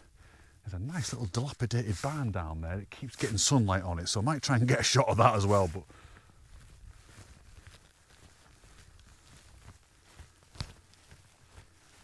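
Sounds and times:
footsteps on rough grass: 0.8 - 12.0.

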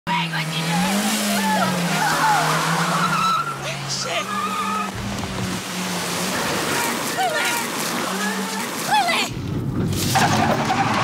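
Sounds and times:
car engine revving hard: 0.1 - 8.9
tyres squealing: 0.6 - 5.3, 6.2 - 9.3.

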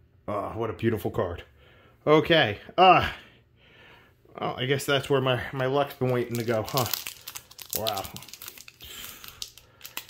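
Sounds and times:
foil pack crinkling: 5.6 - 10.0.

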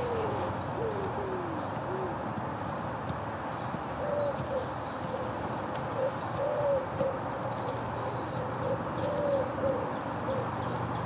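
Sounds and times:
pigeons cooing: 0.0 - 2.3, 4.0 - 5.3, 6.0 - 7.3, 8.1 - 10.5.

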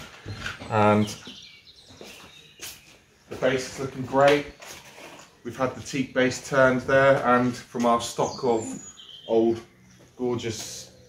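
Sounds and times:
faint bird chirps: 8.1 - 11.0.

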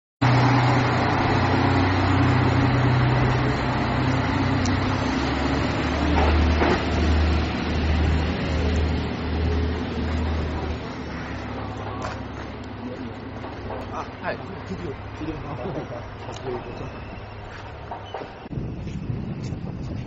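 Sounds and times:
diesel engine drone: 0.2 - 20.0.

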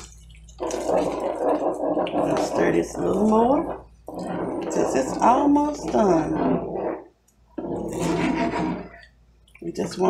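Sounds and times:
spatula scraping gravy in skillet: 0.6 - 7.1, 7.9 - 9.0.

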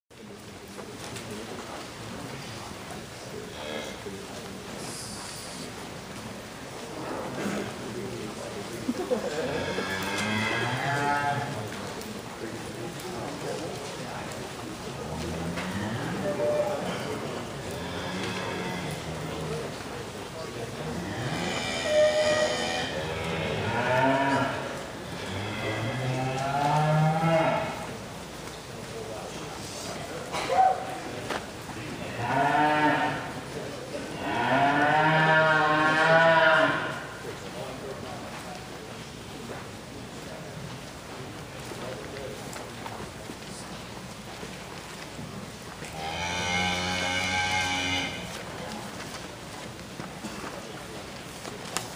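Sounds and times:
cow mooing: 20.9 - 27.8, 34.2 - 37.0, 46.0 - 48.3.

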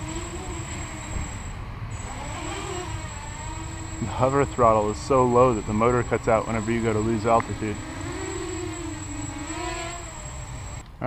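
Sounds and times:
quadcopter propellers buzzing: 0.0 - 10.8.

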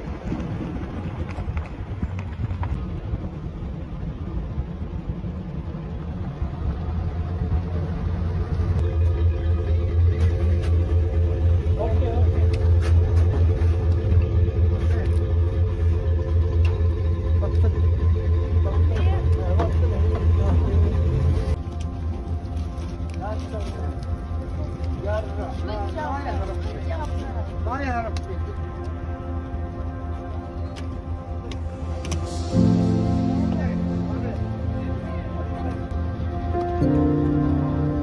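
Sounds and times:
vehicle engine running: 0.0 - 38.0.

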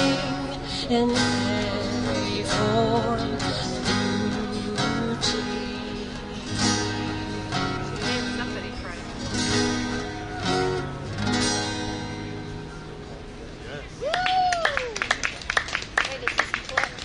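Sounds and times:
acoustic guitars strumming chords: 0.0 - 14.0.

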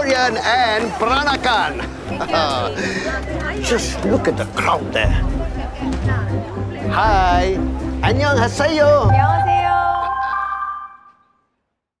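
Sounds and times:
bell-like musical chime: 9.1 - 11.2.

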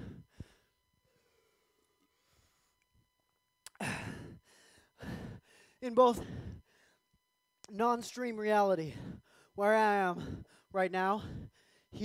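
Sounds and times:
person breathing out heavily: 0.0 - 2.8, 3.7 - 7.0, 8.8 - 9.6, 10.2 - 12.0
person speaking: 5.8 - 6.4, 7.7 - 11.4.

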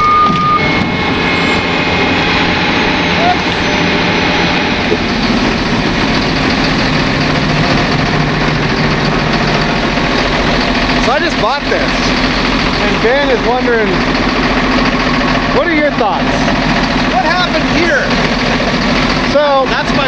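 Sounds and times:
excavator engine idling: 0.0 - 20.0.

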